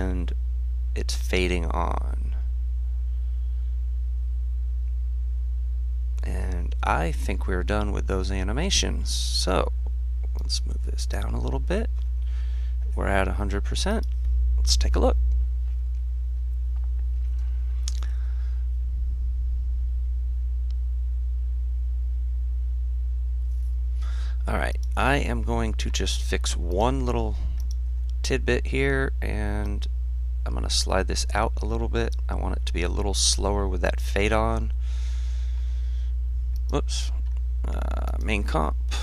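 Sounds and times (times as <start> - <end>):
mains hum: 0.0 - 39.0
faint click: 27.6 - 28.2.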